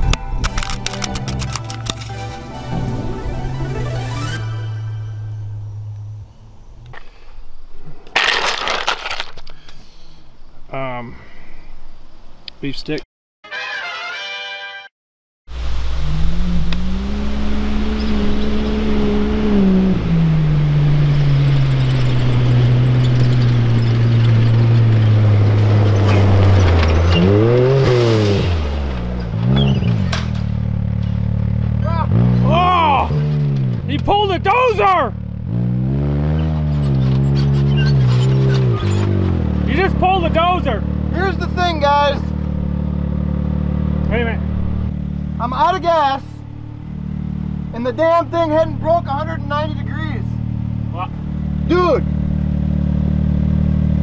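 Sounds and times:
side-by-side engine revving: 15.6s - 54.0s.

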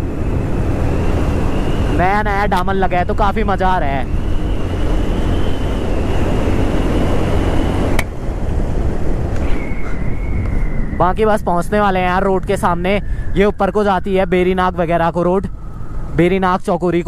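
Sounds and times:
motorcycle engine rumble: 0.0s - 11.1s
wind buffeting microphone: 0.0s - 17.0s.

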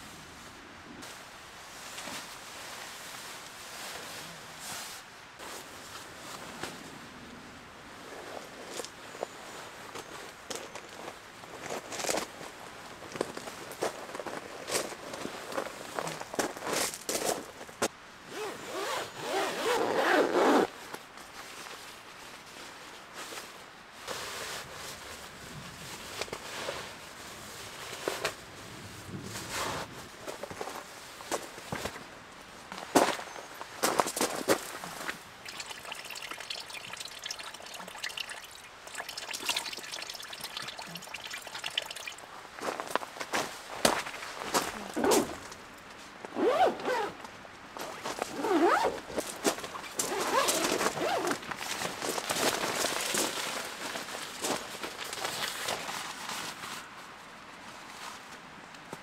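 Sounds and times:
sleeping bag rustling and crinkling: 8.0s - 58.4s.

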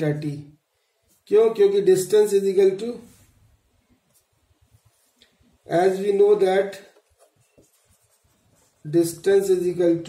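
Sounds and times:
man speaking: 0.0s - 0.6s, 1.2s - 3.2s, 5.6s - 7.0s, 8.7s - 10.0s
faint small sounds: 2.8s - 9.8s.

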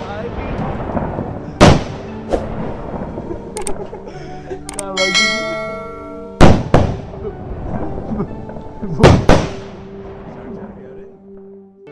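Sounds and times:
firecracker bangs: 0.0s - 3.3s, 6.4s - 7.2s, 9.0s - 10.0s
bell-like chime: 5.0s - 6.4s.

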